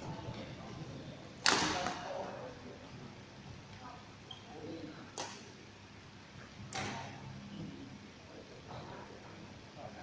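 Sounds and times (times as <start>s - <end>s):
racket striking shuttlecock: 1.4s - 2.0s.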